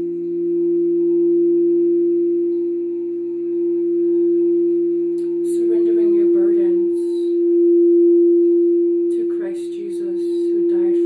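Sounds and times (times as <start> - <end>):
crystal singing bowl ringing: 0.0 - 11.0.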